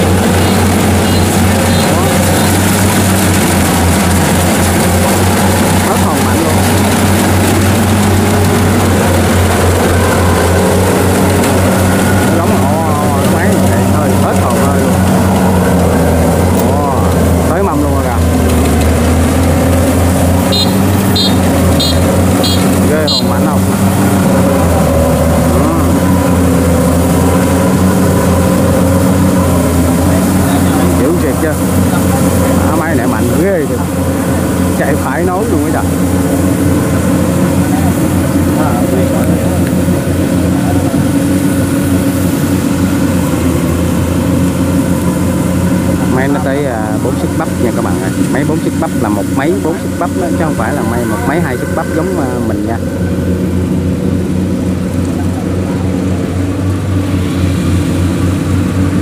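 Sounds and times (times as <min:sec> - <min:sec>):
combine harvester running: 0:00.0 - 0:59.0.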